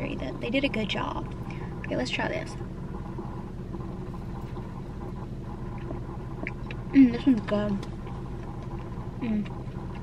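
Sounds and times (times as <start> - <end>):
car cabin hum: 0.0 - 10.0
chewing mouth sounds: 5.7 - 6.9.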